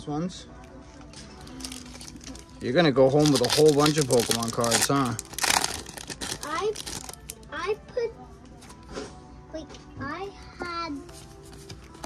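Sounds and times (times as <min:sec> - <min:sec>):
foil wrapper crinkling: 0:01.4 - 0:07.4.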